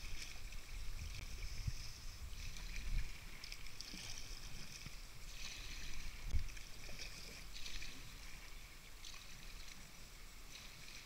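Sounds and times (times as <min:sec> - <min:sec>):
paddle splashing in water: 0:00.0 - 0:11.0.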